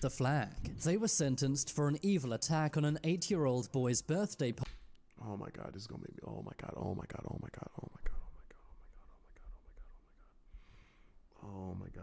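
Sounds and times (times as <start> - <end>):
man whispering: 5.2 - 10.5, 11.3 - 12.0
soft breathy hiss: 7.2 - 11.4.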